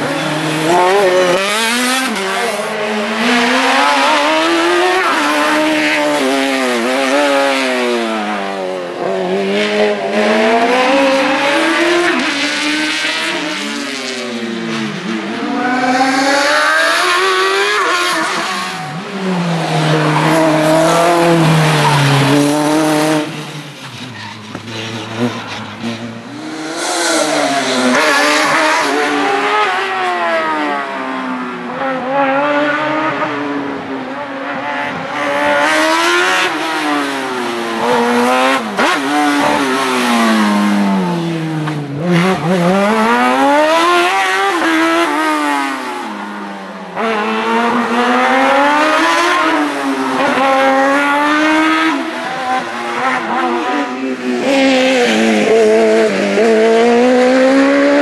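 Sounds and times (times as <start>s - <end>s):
racing car engines revving: 0.0s - 58.0s.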